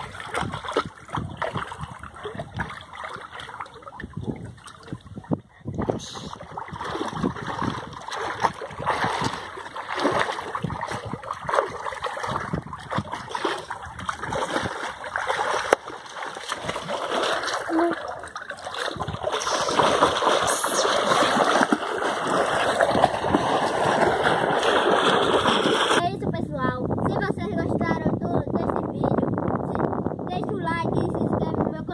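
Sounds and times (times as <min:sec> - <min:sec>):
water splashing and churning: 0:00.0 - 0:26.2.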